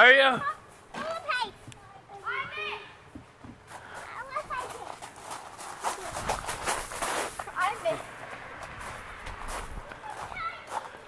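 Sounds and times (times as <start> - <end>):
young children calling: 0.3 - 3.2, 3.8 - 5.0, 9.5 - 11.0.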